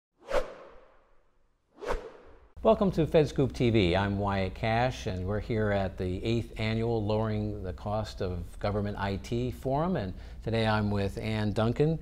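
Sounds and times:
whoosh sound effects: 0:00.2 - 0:01.1, 0:01.8 - 0:02.6.

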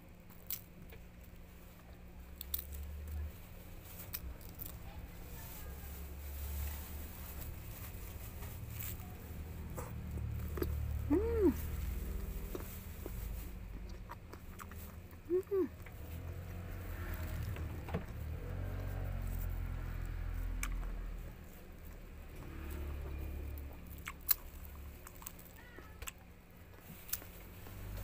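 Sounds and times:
rind tearing crackles: 0:02.3 - 0:03.1
chewing and mouth sounds: 0:09.6 - 0:28.0
pitched mouth sounds: 0:15.3 - 0:15.8.

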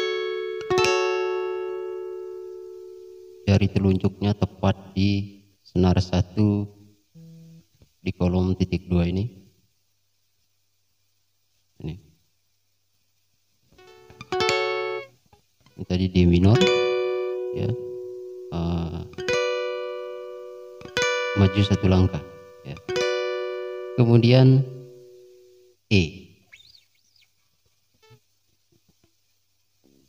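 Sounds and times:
acoustic guitar notes: 0:00.0 - 0:04.8, 0:07.1 - 0:07.9, 0:13.7 - 0:27.3
faint high chirp: 0:26.4 - 0:27.4.

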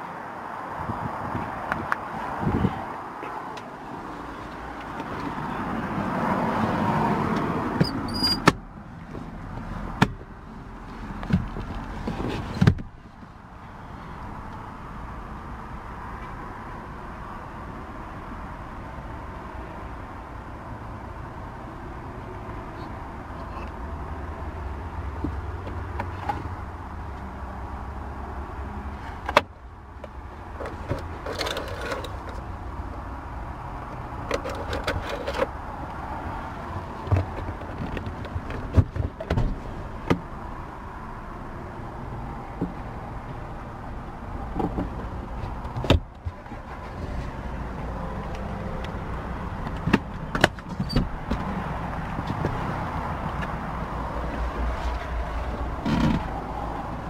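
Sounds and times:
knocks and clicks of car trim: 0:07.3 - 0:10.3, 0:11.2 - 0:13.3, 0:37.0 - 0:40.3, 0:44.5 - 0:46.3.

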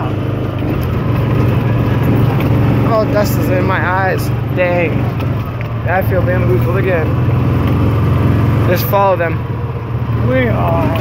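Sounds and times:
vehicle engine running: 0:00.0 - 0:11.0.

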